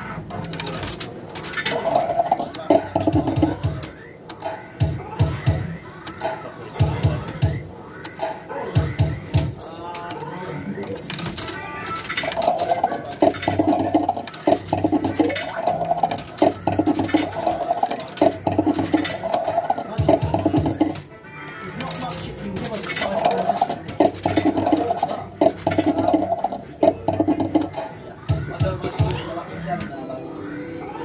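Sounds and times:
looping electronic jingle: 23.2 - 27.8.

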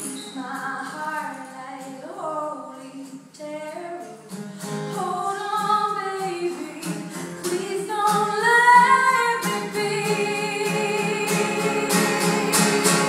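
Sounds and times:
strummed acoustic guitar: 0.0 - 13.0
woman singing: 0.0 - 13.0.

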